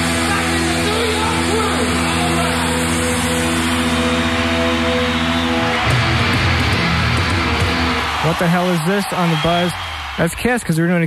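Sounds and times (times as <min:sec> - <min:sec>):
distorted guitar chord drone: 0:00.0 - 0:08.2.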